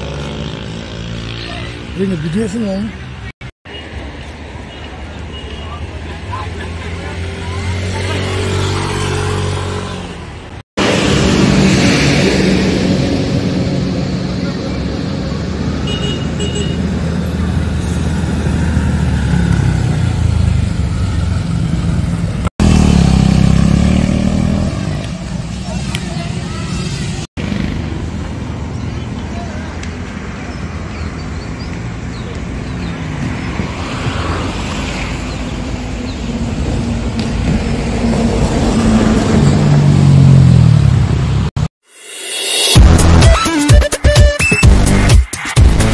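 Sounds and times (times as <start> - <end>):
motorcycle engines running: 0.0 - 3.3, 6.2 - 37.7
people talking: 1.4 - 3.0, 25.0 - 27.2, 29.0 - 30.0.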